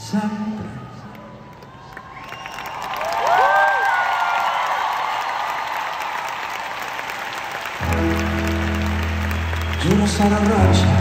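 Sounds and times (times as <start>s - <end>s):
crowd applauding and cheering: 0.8s - 11.0s
band music: 7.8s - 11.0s.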